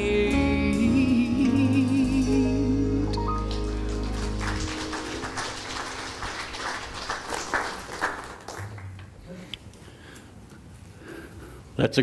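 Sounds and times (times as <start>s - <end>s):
congregation clapping: 3.2s - 9.2s.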